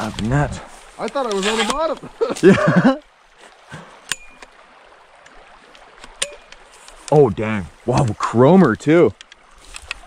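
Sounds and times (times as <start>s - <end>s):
creek flowing: 0.0s - 10.0s.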